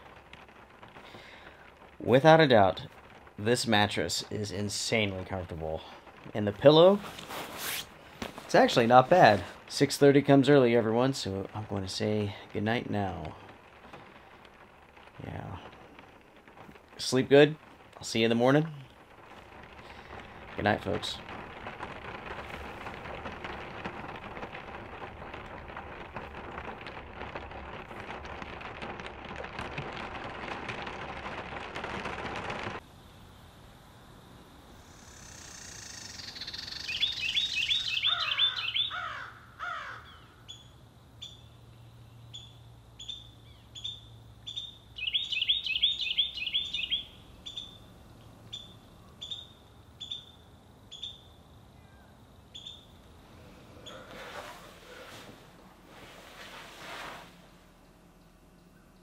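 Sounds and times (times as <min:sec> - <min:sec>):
steady rain falling: 0:00.0 - 0:59.0
bird falling calls: 0:35.1 - 0:40.6, 0:43.8 - 0:47.8, 0:48.5 - 0:55.3
birds trilling: 0:35.6 - 0:40.6, 0:43.8 - 0:47.8.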